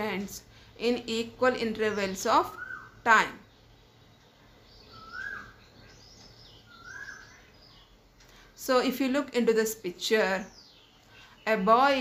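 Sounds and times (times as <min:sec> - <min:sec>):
chirping bird calls: 0:00.0 - 0:12.0
faint room noise: 0:00.0 - 0:12.0.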